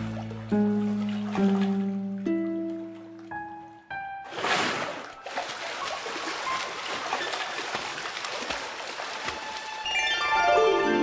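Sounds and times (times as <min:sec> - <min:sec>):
water splashing and trickling: 0:00.0 - 0:10.3.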